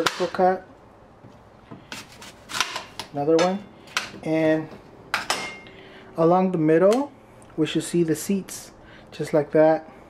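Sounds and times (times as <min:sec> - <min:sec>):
knife slicing through apple: 0:01.8 - 0:03.0.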